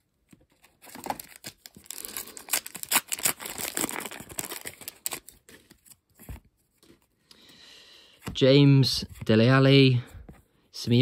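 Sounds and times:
wrapper tearing and crinkling: 0:00.8 - 0:06.0.

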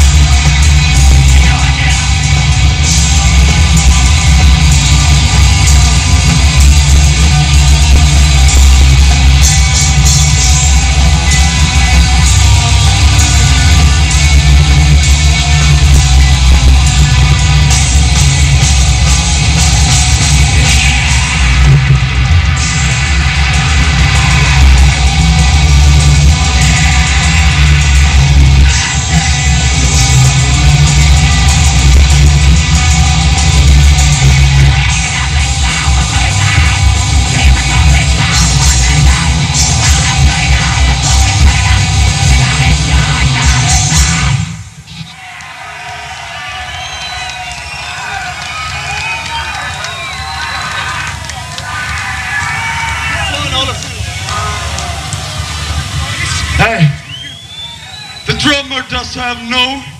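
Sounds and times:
metal band playing live: 0:00.0 - 0:45.2.

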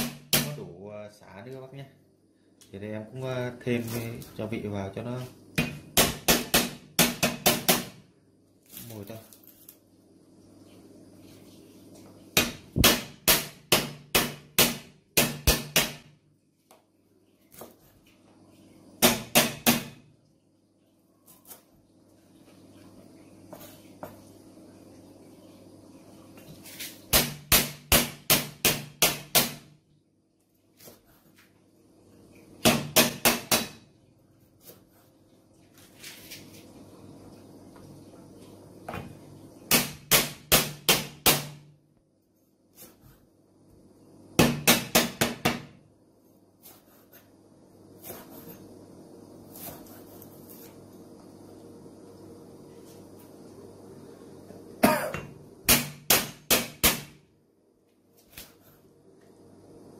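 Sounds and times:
low steady hum: 0:00.0 - 0:59.9
knife chopping on wooden board: 0:12.4 - 0:16.1, 0:27.1 - 0:29.6, 0:32.6 - 0:33.8.

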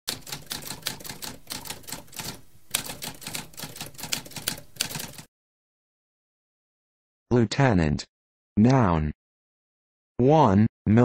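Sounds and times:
typewriter keys clattering: 0:00.1 - 0:05.3.

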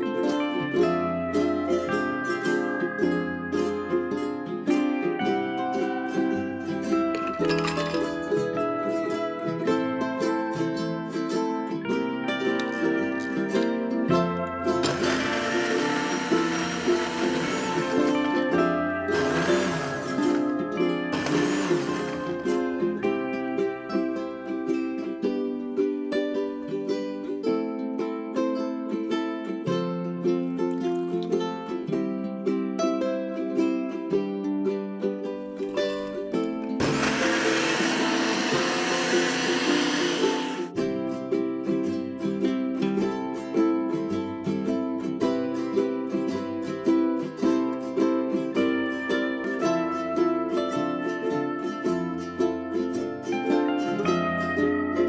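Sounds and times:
plucked strings music: 0:00.0 - 0:55.0
countertop blender running: 0:14.8 - 0:18.4, 0:19.1 - 0:20.4, 0:21.2 - 0:22.4, 0:36.8 - 0:40.7.

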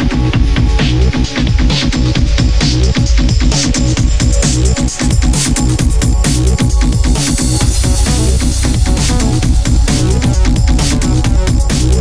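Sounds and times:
deep heavy bass line: 0:00.0 - 0:12.0
fast drum beat: 0:00.0 - 0:12.0.

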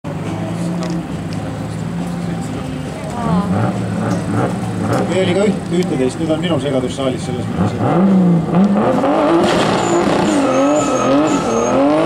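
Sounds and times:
cars idling: 0:00.1 - 0:12.0.

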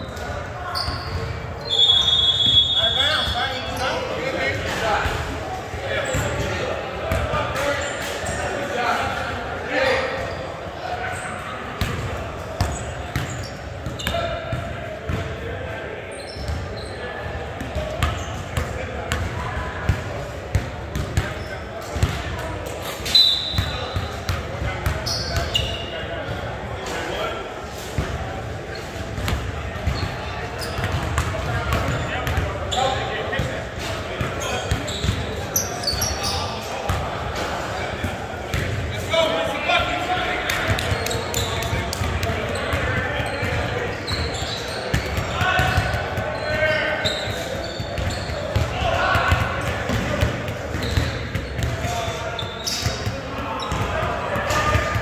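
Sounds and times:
players shouting: 0:44.3 - 0:50.9
basketball bouncing on hardwood court: 0:44.9 - 0:46.0, 0:47.8 - 0:51.9.

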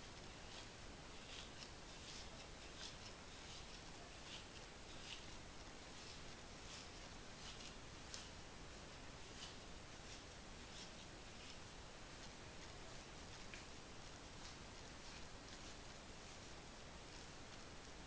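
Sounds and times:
hair pick rustling through hair: 0:00.0 - 0:18.0
steady background hiss: 0:00.0 - 0:18.0.

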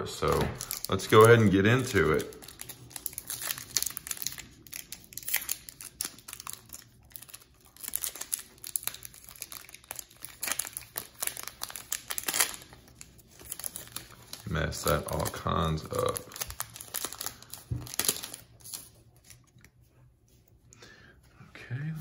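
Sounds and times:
foil wrapper crinkling and tearing: 0:00.2 - 0:19.7.

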